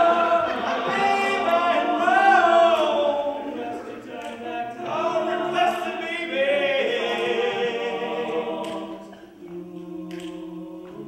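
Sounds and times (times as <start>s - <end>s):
male quartet singing in harmony: 0.0s - 11.0s.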